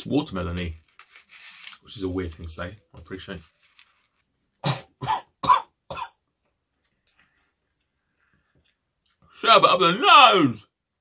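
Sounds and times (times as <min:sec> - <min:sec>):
man coughing: 0:04.6 - 0:06.2.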